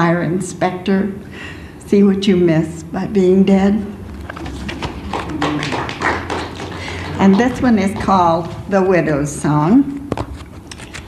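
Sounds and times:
light scattered applause: 4.5 - 8.2.

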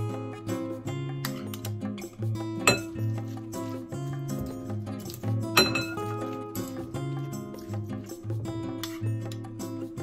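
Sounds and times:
background music: 0.0 - 10.0
spoon clinking on a dish: 2.6 - 3.1, 5.6 - 6.1.

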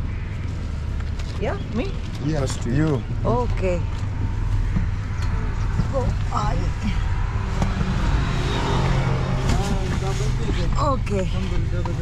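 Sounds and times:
minibus engine rumble: 0.0 - 12.0
road noise: 0.0 - 12.0.

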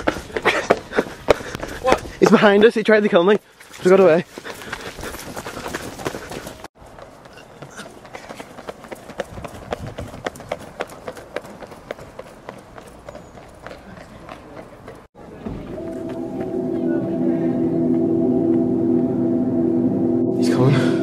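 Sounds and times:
footsteps running on pavement: 3.6 - 15.1.

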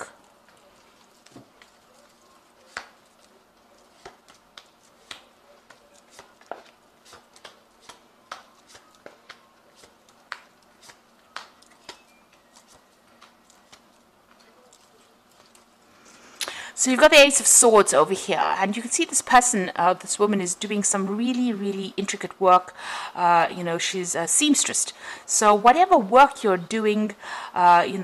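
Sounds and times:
cards being shuffled: 0.0 - 15.8.

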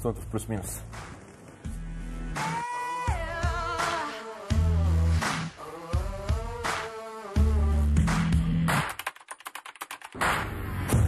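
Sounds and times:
typewriter keystrokes: 8.8 - 10.2.

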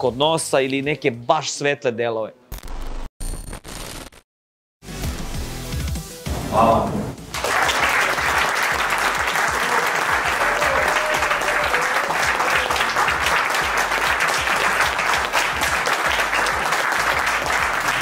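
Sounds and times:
crowd applause: 7.4 - 18.0.

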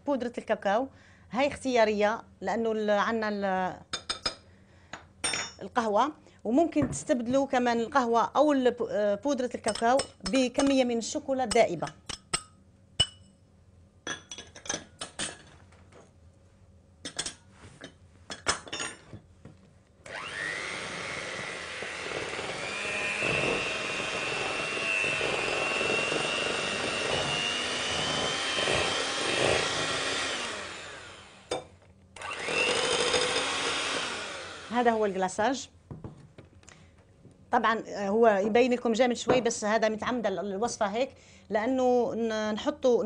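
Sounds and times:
electric hand mixer whining: 20.0 - 31.5, 32.2 - 35.2.

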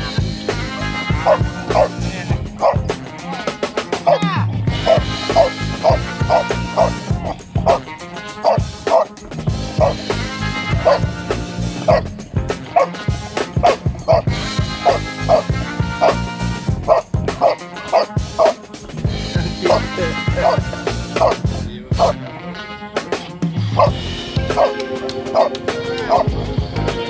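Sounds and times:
background music: 0.0 - 27.0
dog barking in high yips: 1.2 - 1.9, 2.6 - 2.8, 4.1 - 7.8, 8.4 - 9.1, 9.8 - 10.0, 10.7 - 11.1, 12.7 - 13.0, 13.6 - 16.2, 16.9 - 18.6, 24.5 - 26.3.

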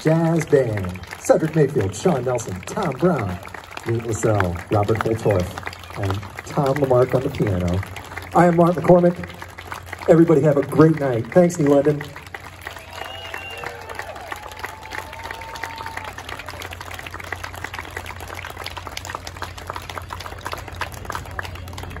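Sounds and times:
audience applauding: 0.0 - 22.0
long call from crowd: 12.3 - 18.0.

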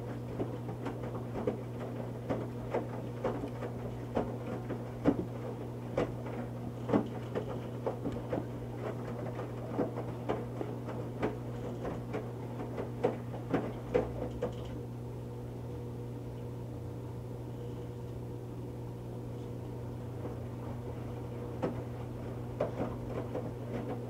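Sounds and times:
water splashing in washer drum: 0.0 - 14.8, 20.0 - 24.0
washing machine motor hum: 0.0 - 24.0.

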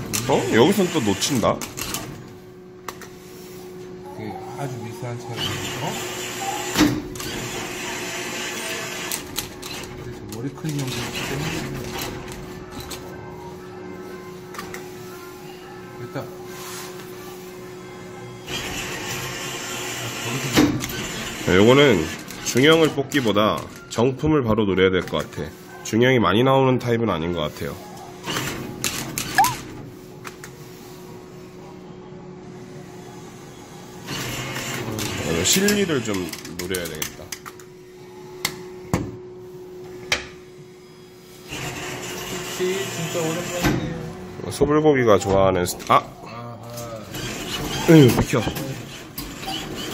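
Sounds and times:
claw machine whirring hum: 0.0 - 49.9
crane motor whirring: 4.8 - 15.3, 47.0 - 49.9
claw machine squeak: 29.2 - 29.7, 47.1 - 49.9.

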